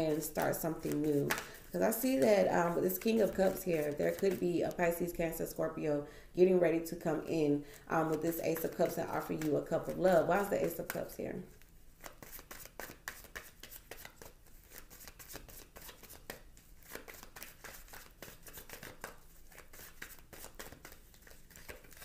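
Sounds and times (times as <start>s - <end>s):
cards being shuffled: 0.0s - 4.7s, 7.9s - 11.1s, 12.0s - 22.0s.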